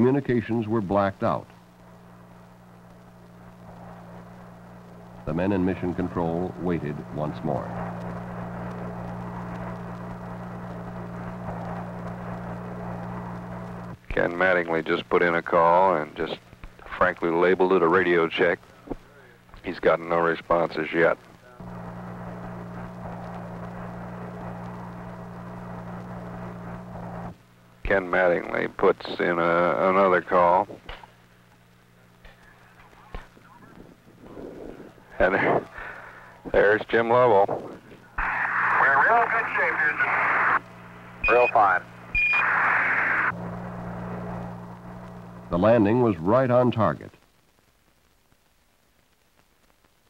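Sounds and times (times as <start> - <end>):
low electrical hum: 0.0 - 50.0
radio hiss: 0.0 - 50.0.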